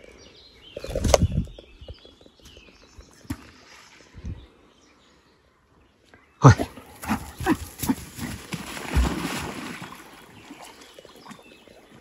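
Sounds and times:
dog splashing in water: 0:07.0 - 0:11.5.

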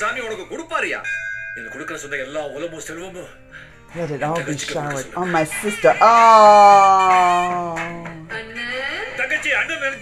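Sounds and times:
background music: 0:00.0 - 0:10.0
bell-like ringing tone: 0:01.0 - 0:02.8.

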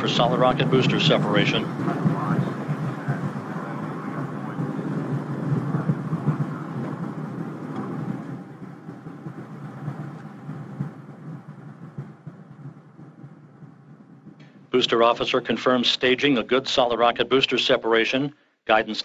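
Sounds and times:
rocket booster rushing rumble: 0:00.0 - 0:15.4.

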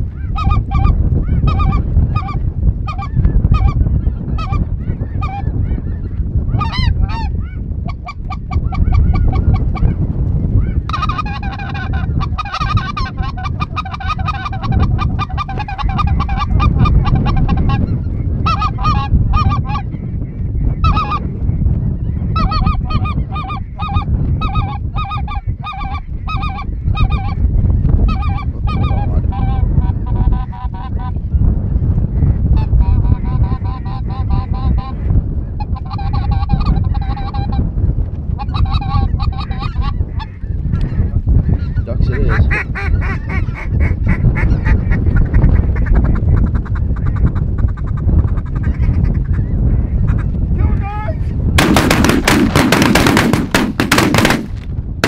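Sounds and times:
wind rumble on microphone: 0:00.0 - 0:55.0
geese honking: 0:00.2 - 0:05.5, 0:06.5 - 0:10.0, 0:10.9 - 0:19.9, 0:20.8 - 0:21.2, 0:22.4 - 0:27.4.

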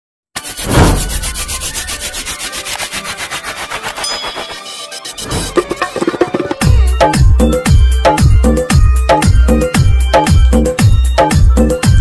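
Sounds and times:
heavy thump: 0:00.6 - 0:01.4.

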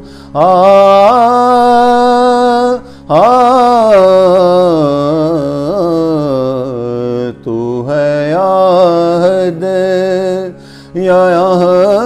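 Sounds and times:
man singing melisma: 0:00.3 - 0:12.0.

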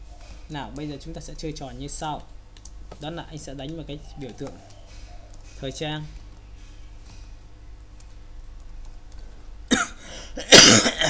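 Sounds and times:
person coughing: 0:09.7 - 0:11.0.

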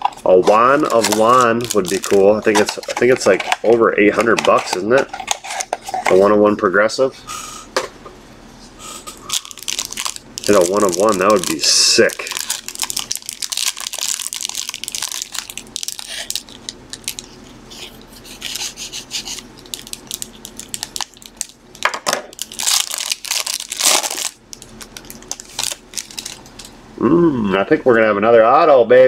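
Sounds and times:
wrapper crinkling and tearing: 0:00.0 - 0:06.3, 0:09.3 - 0:17.9, 0:18.5 - 0:26.7.

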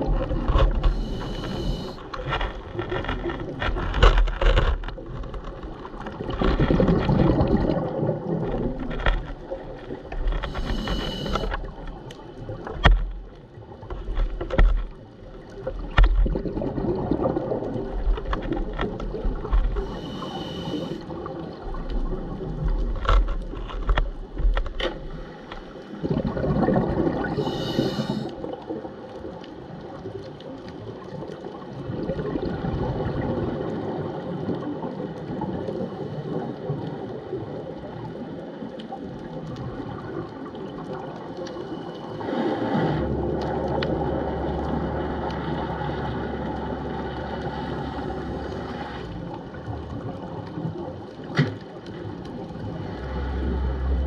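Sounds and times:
underwater clicks: 0:00.0 - 0:21.0, 0:21.8 - 0:28.6, 0:43.2 - 0:52.6
underwater rushing water: 0:00.0 - 0:54.0
hissing bubbles: 0:06.2 - 0:08.9, 0:15.8 - 0:22.6, 0:25.9 - 0:28.8.

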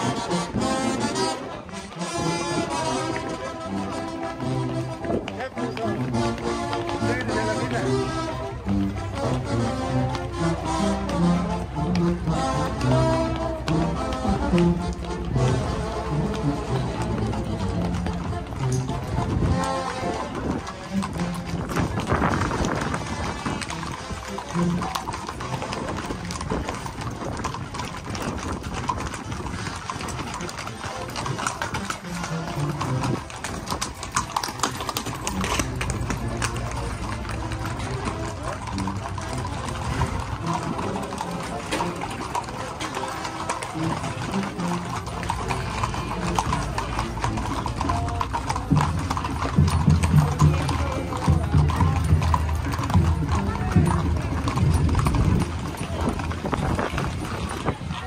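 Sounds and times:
hooves clip-clopping on pavement: 0:00.0 - 0:58.0
people's voices: 0:00.0 - 0:58.0
music: 0:00.3 - 0:20.1.

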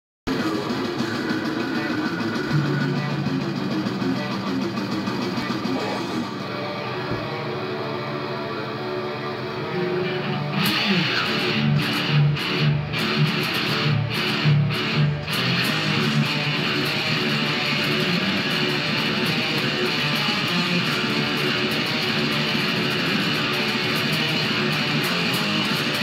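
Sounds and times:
distorted electric guitar riff: 0:00.3 - 0:26.0.

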